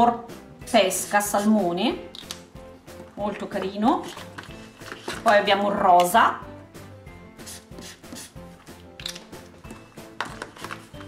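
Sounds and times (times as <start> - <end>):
soft background music: 0.0 - 11.0
highlighter scratching on paper: 7.4 - 8.5.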